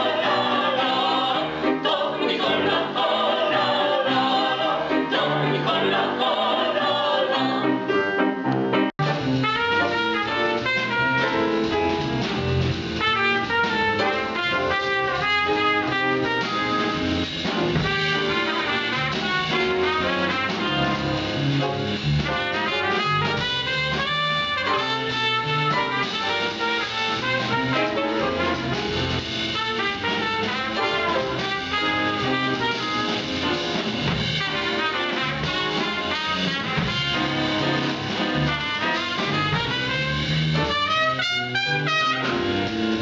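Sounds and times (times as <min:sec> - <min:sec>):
folk vocal singing: 0:00.0 - 0:07.9
jazz combo playing: 0:00.0 - 0:43.0.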